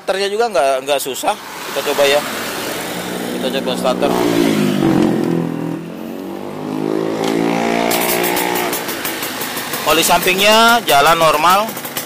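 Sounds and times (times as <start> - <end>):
two-stroke motorcycle engine revving: 1.4 - 12.0
fast ticking rattle: 8.0 - 12.0.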